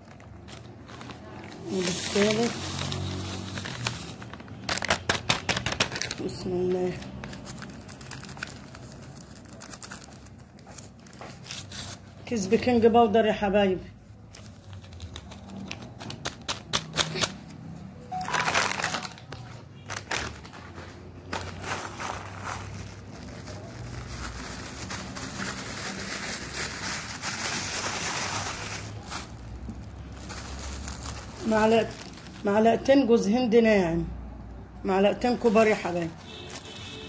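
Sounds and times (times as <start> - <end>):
paper and plastic bag crinkling: 0.0 - 12.7, 14.0 - 17.5, 18.1 - 33.0, 35.2 - 37.0.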